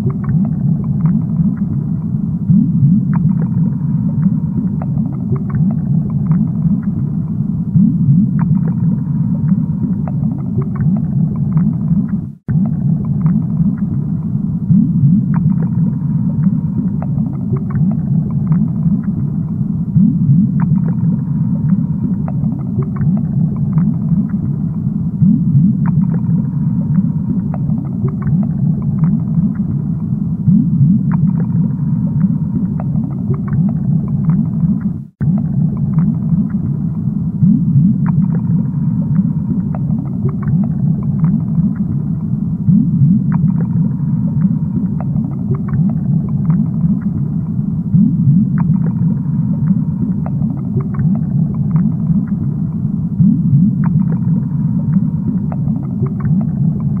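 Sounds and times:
bubbles popping and clicking: 0:00.0 - 0:14.0, 0:14.7 - 0:57.0
underwater low rumble: 0:00.0 - 0:57.0.

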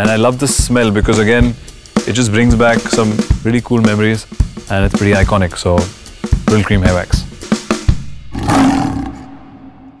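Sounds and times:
lion roaring: 0:08.3 - 0:10.0.

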